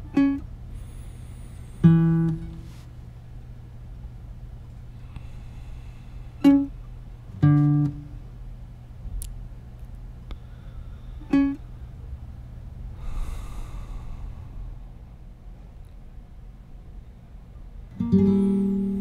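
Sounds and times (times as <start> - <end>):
acoustic guitar plucked notes: 0.0 - 0.4, 1.8 - 2.8, 6.4 - 8.2, 11.3 - 11.6, 18.0 - 19.0.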